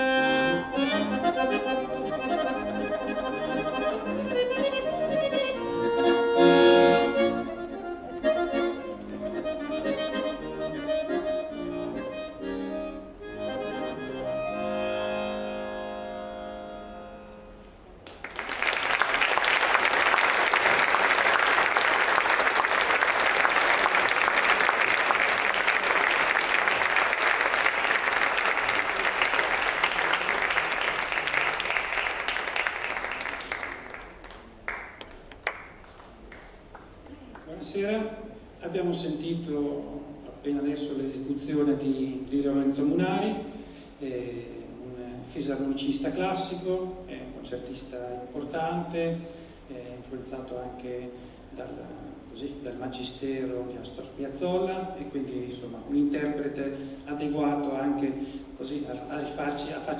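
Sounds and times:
button accordion melody: 0.0s - 17.8s
audience applauding: 18.0s - 37.5s.

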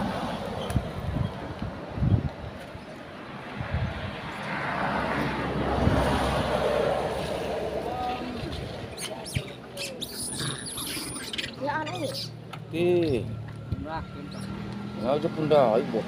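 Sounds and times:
car passing by: 3.2s - 9.0s, 12.8s - 16.0s.

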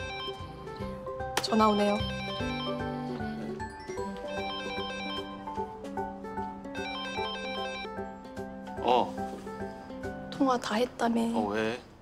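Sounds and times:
mobile phone ringtone melody: 0.0s - 0.8s, 1.7s - 5.8s, 6.7s - 8.1s.

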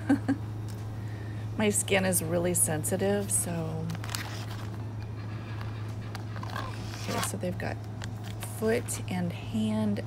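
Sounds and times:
low hum of store background: 0.0s - 10.0s
plastic packets crinkling: 3.8s - 4.8s, 5.5s - 8.6s.

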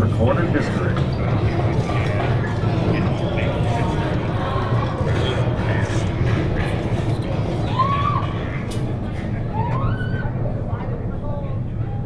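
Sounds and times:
train rolling along track: 0.0s - 9.4s.

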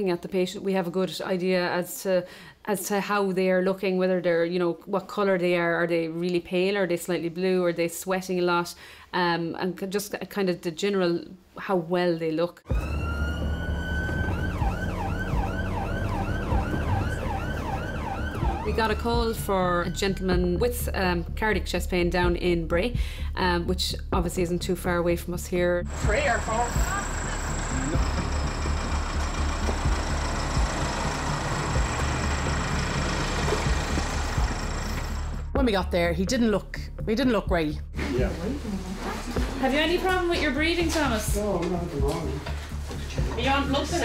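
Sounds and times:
ambulance siren wailing and yelping: 12.7s - 19.5s
engine and road rumble: 12.7s - 19.8s, 25.8s - 35.6s.

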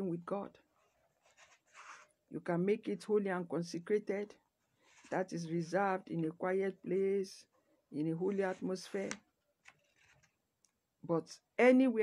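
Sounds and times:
woman speaking: 0.0s - 0.6s, 2.3s - 4.3s, 5.1s - 9.2s, 11.0s - 12.0s.

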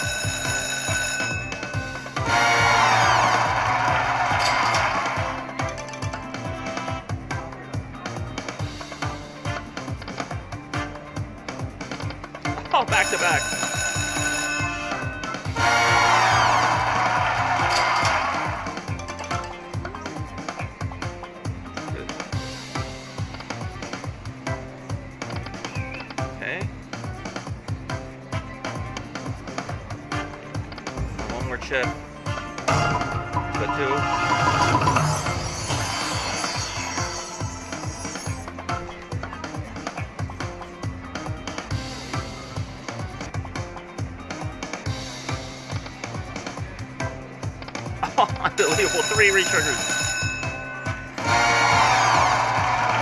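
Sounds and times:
slot machine music with beat: 0.0s - 25.4s, 28.8s - 53.0s
chimes: 12.9s - 15.5s, 48.6s - 51.3s.

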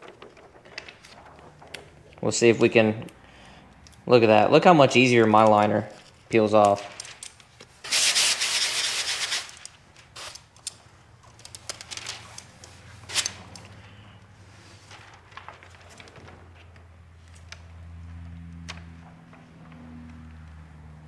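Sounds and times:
plastic film crinkling: 6.7s - 7.9s, 9.2s - 13.7s, 14.7s - 17.5s.

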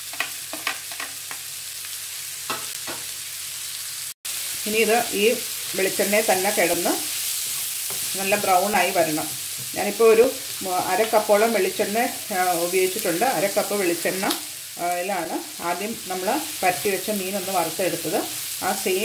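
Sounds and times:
onions sizzling in a frying pan: 0.0s - 19.0s
spatula stirring: 6.6s - 9.7s.

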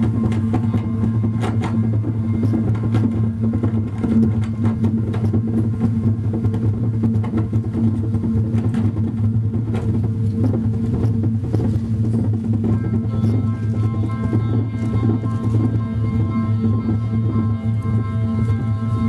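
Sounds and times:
low synthesizer drone: 0.0s - 19.0s.

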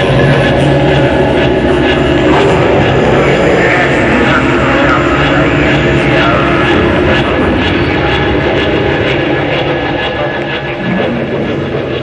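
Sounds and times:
tank engine rumble: 0.0s - 12.0s.

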